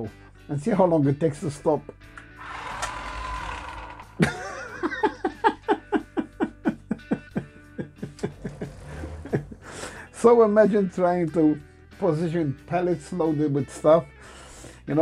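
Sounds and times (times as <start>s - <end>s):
toy motor whirring: 2.4s - 4.4s.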